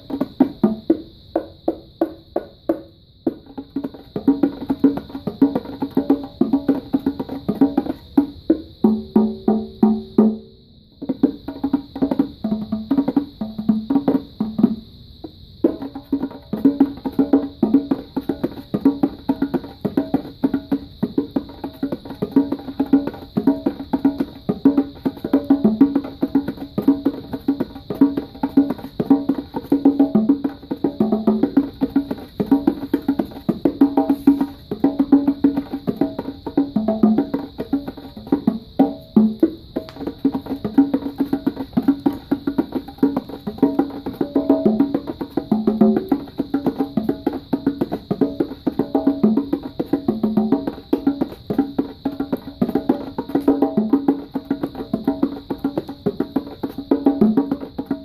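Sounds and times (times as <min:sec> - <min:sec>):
bongo drums played by hand: 0:00.0 - 0:58.0.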